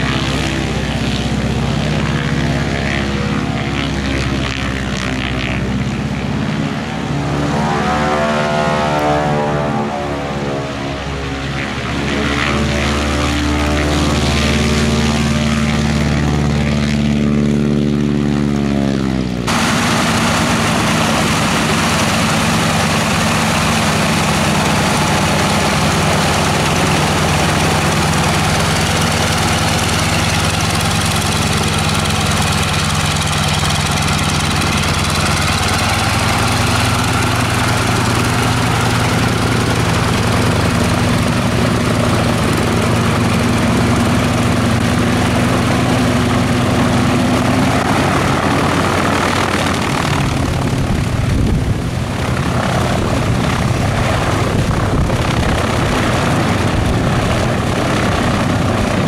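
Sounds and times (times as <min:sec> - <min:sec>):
radial engine propeller drone: 0:00.0 - 0:59.0.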